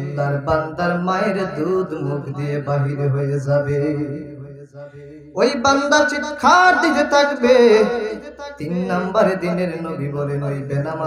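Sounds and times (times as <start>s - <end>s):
man chanting a sermon: 0.0s - 4.5s, 5.4s - 11.0s.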